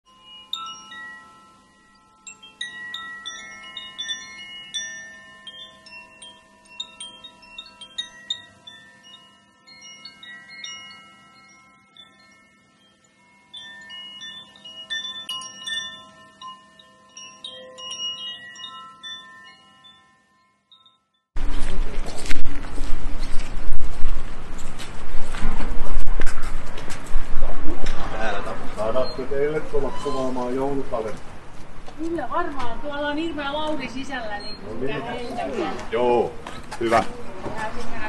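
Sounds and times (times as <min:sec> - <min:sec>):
chimes ringing: 0:00.1 - 0:21.4, 0:28.7 - 0:31.2, 0:32.3 - 0:37.0.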